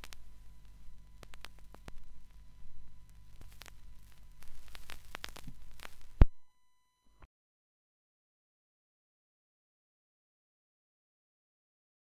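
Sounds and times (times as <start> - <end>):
vinyl record crackles and clicks: 0.0 - 7.3.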